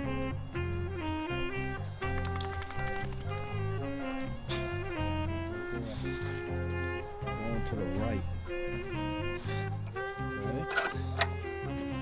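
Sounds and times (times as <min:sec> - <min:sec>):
jazzy instrumental music: 0:00.0 - 0:12.0.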